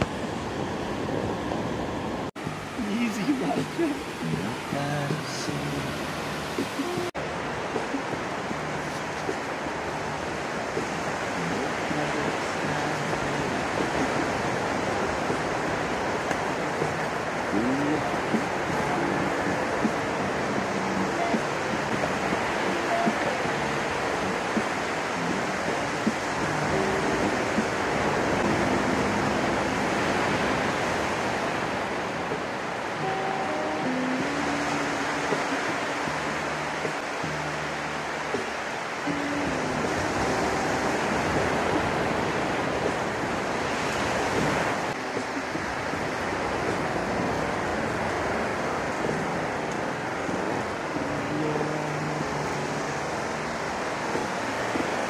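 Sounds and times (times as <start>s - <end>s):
ocean surf washing onto beach: 0.0s - 55.0s
music of held notes: 2.4s - 55.0s.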